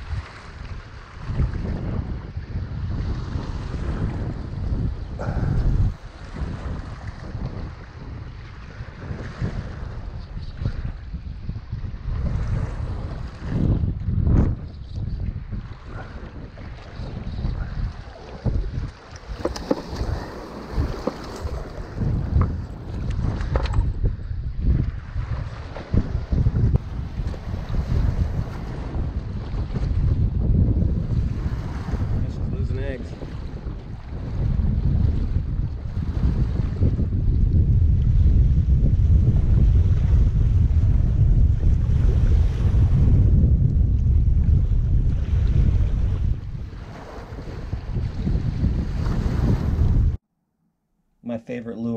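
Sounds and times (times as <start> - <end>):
wind rumbling on microphone: 0.0 - 50.2
waves washing against rocks: 17.1 - 23.6.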